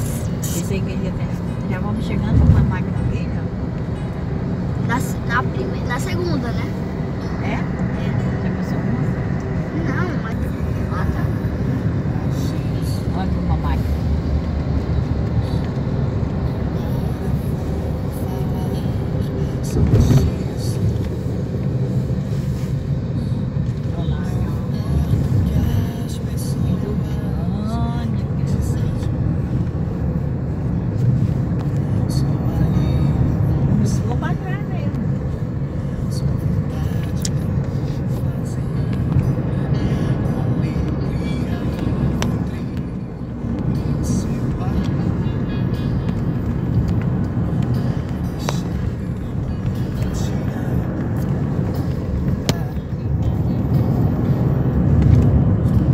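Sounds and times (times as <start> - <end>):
faint music: 0.0 - 55.9
road and engine rumble: 0.0 - 55.9.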